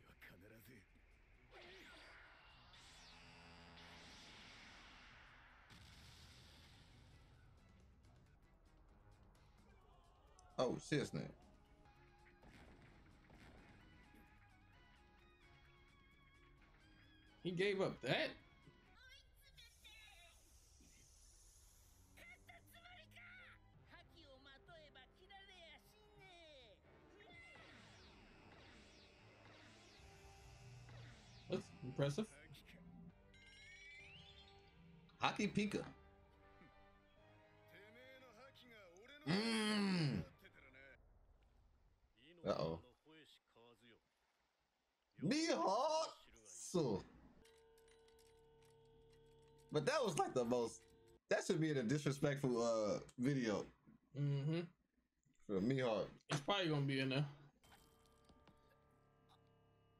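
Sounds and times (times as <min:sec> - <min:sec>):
quiet background music: 0:06.8 - 0:41.0, 0:45.2 - 0:53.7.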